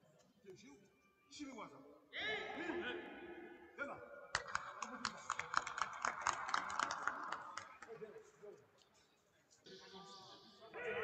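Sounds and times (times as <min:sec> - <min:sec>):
small group clapping: 0:04.3 - 0:08.3.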